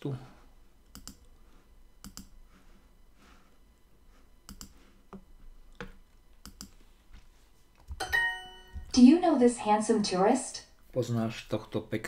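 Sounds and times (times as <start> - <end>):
computer mouse clicks: 0.9 - 1.3, 2.0 - 2.4, 4.5 - 5.2, 5.8 - 6.8.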